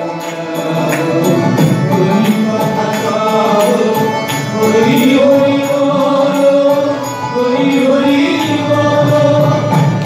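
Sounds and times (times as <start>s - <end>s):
men singing together: 0.0s - 10.0s.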